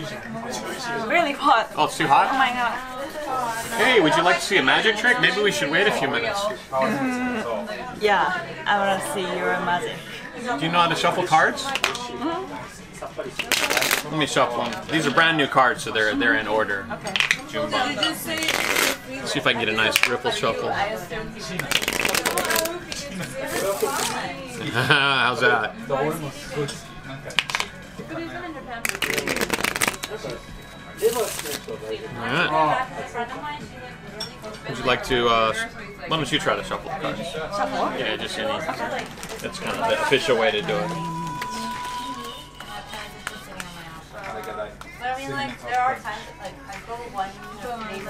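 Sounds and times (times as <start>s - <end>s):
background music: 0.0s - 48.0s
cards being riffle-shuffled: 21.6s - 22.8s, 28.9s - 30.3s
low voices: 38.8s - 44.8s.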